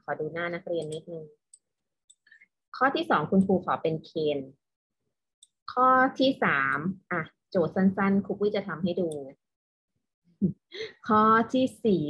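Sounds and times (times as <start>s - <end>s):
woman speaking: 0.0s - 1.4s, 2.8s - 4.6s, 5.7s - 9.4s, 10.4s - 12.0s.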